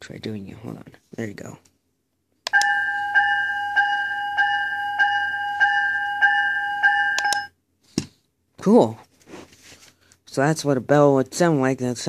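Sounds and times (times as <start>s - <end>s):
toy train bell ringing: 2.5s - 7.5s.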